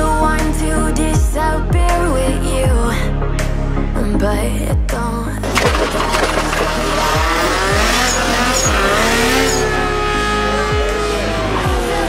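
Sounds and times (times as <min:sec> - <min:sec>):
tyres squealing: 0:05.9 - 0:09.9
race engine revving: 0:06.9 - 0:12.0.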